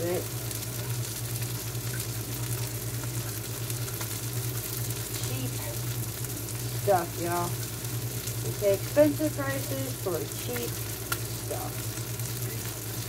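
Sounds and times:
fish sizzling in a skillet: 0:00.0 - 0:13.0
low steady hum: 0:00.0 - 0:13.0.

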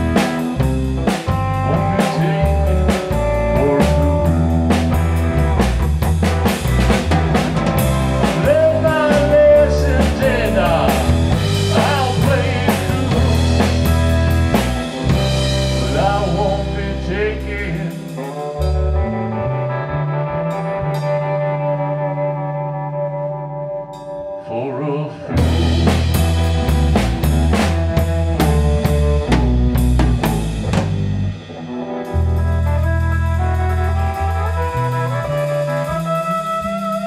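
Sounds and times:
drum kit: 0:00.0 - 0:19.3, 0:19.9 - 0:22.0, 0:25.3 - 0:37.0
bass guitar: 0:00.0 - 0:37.0
electric guitar: 0:00.0 - 0:37.0.

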